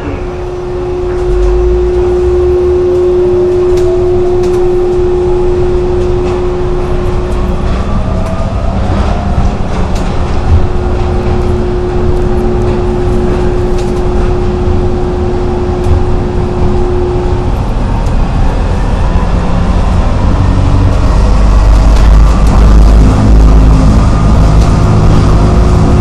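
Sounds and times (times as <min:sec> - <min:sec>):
constant hum: 0:00.0 - 0:26.0
motor whine rising in pitch: 0:00.0 - 0:26.0
train rumble: 0:00.0 - 0:26.0.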